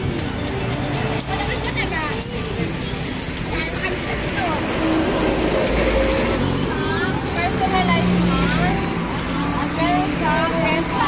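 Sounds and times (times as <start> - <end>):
people talking and exclaiming: 0.0 - 11.0
street noise: 0.0 - 11.0
vehicle rumble: 0.0 - 11.0.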